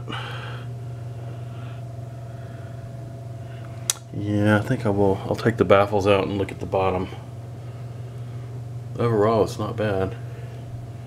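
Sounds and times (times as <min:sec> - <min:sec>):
higher steady tone: 0:00.0 - 0:10.5
steady low hum: 0:00.0 - 0:11.0
sharp click: 0:03.9 - 0:04.1.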